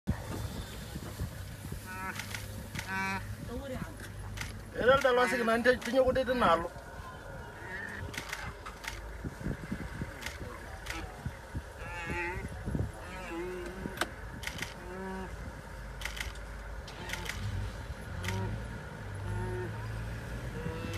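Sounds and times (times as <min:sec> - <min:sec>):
low steady rumble: 0:06.1 - 0:20.9
sharp clicks: 0:08.1 - 0:09.1, 0:16.0 - 0:17.6.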